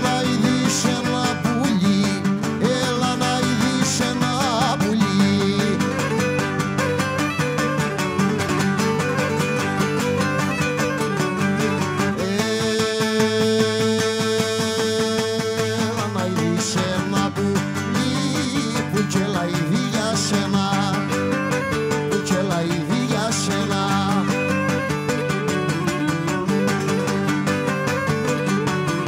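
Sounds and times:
plucked lutes: 0.0 - 29.0.

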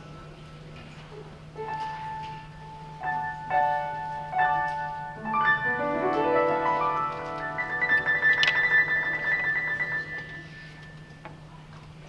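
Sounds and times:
piano fast repeated high notes: 1.6 - 11.2.

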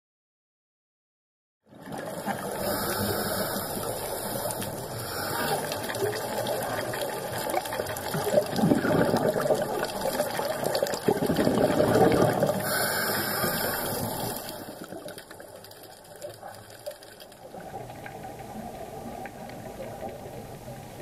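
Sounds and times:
underwater bubbles gurgling: 1.7 - 21.0.

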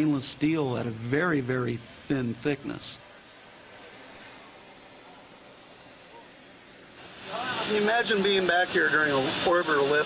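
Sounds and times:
thin high tone: 0.0 - 6.7
background hiss: 0.0 - 10.0.

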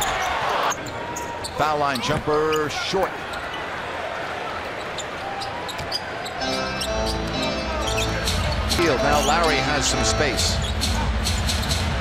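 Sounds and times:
sneaker squeaks: 0.0 - 3.7, 4.6 - 9.6, 10.4 - 11.9
arena crowd noise: 0.0 - 12.0
arena music with heavy bass: 6.5 - 12.0.

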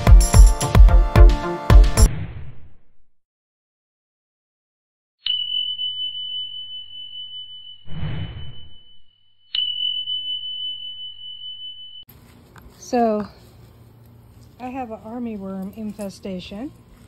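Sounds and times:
electronic bell dings: 5.2 - 7.9, 8.6 - 12.1.

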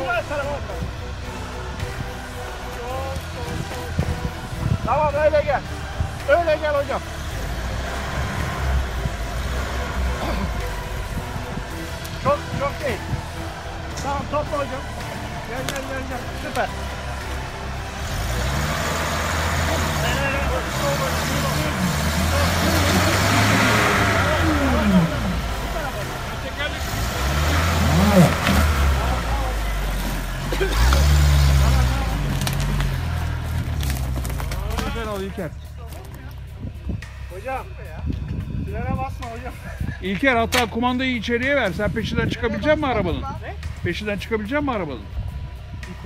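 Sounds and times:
engine revving: 0.0 - 35.7.

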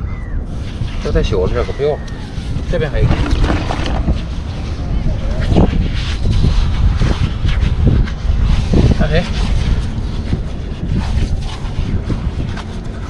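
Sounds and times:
wind buffeting microphone: 0.0 - 13.0
hands digging in wet sand: 2.3 - 4.3.

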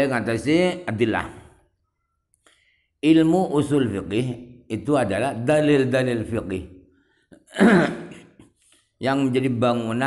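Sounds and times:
man clearing his throat: 7.4 - 8.5.

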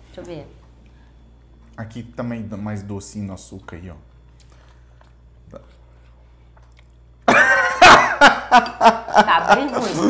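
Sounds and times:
low steady hum: 0.0 - 10.0
person quietly chewing: 4.3 - 7.2.

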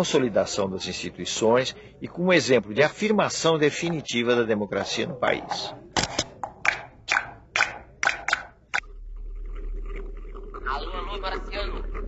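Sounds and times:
steady low hum: 8.6 - 12.0.

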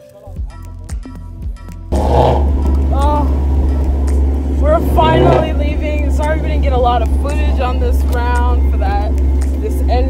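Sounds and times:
car engine rumbling inside cabin: 1.9 - 10.0.

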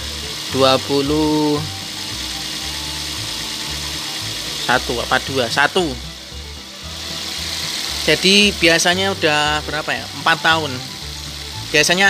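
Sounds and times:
background music: 0.0 - 12.0
car engine idling: 0.0 - 12.0
person speaking: 4.6 - 6.1, 8.0 - 10.9.

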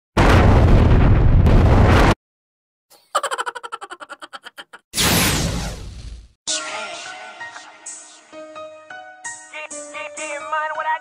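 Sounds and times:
bass-heavy explosion-like noise: 0.2 - 2.2.

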